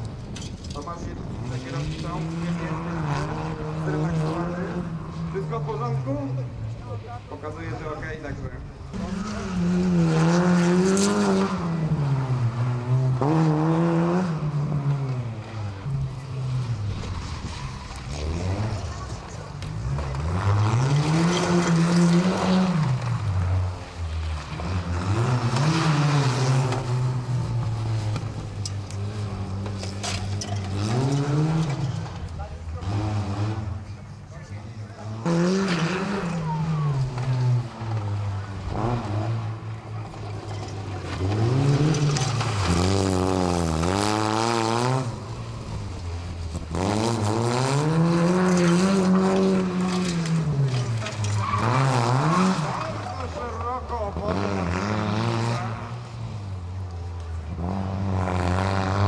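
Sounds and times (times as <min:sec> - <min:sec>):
small car engine revving: 0:01.2 - 0:06.6, 0:08.9 - 0:34.2, 0:34.8 - 0:59.0.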